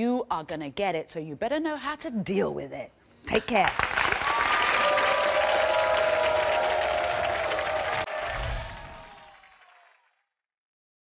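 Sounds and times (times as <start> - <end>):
audience applauding: 3.7 - 10.0.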